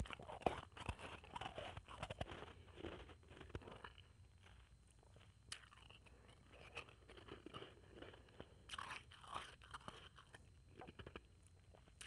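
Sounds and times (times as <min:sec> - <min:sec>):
chewing crunchy ice: 0:00.0 - 0:12.0.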